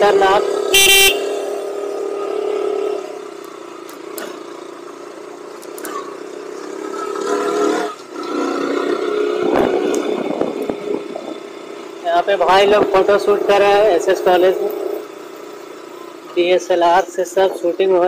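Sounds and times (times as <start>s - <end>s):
motorcycle engine running: 0.0s - 18.0s.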